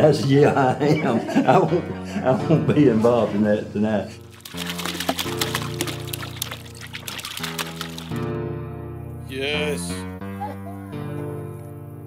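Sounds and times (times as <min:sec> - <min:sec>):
background music with held chords: 0:00.0 - 0:12.0
water balloons splashing and knocking: 0:04.2 - 0:08.2
water pouring into plastic bin: 0:04.3 - 0:08.2.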